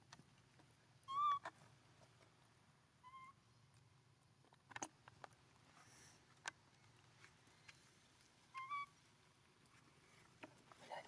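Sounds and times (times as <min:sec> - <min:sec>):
young macaque cooing: 0:01.1 - 0:01.6, 0:03.0 - 0:03.4, 0:08.5 - 0:09.0.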